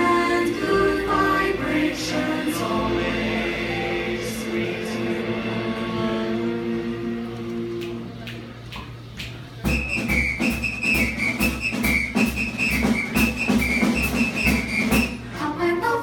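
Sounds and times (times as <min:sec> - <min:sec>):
voices singing: 0:00.0 - 0:08.6
low thumping beat: 0:09.6 - 0:15.3
whistled melody: 0:09.7 - 0:15.3.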